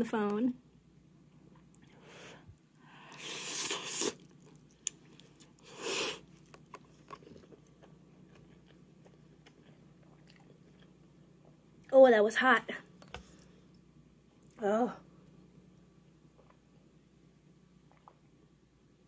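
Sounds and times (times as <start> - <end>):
soft wet chewing: 1.3 - 12.0, 13.0 - 14.6, 16.0 - 16.9, 17.8 - 18.4
noodle slurping: 3.0 - 7.4.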